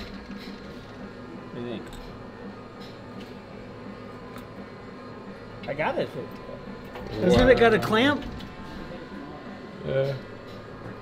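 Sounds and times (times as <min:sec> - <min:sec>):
arcade machines humming: 0:00.0 - 0:11.0.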